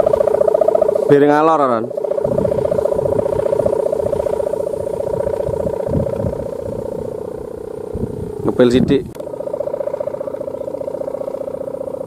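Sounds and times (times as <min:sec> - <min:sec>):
kite hummer droning: 0:00.0 - 0:12.0.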